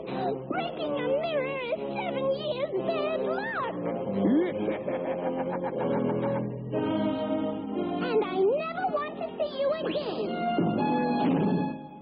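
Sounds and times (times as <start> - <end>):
background music: 0.0 - 12.0
cartoon character laughing: 3.4 - 6.5.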